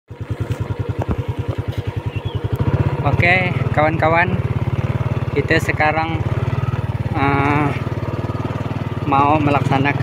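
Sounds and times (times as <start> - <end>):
small motorcycle engine idling: 0.1 - 10.0.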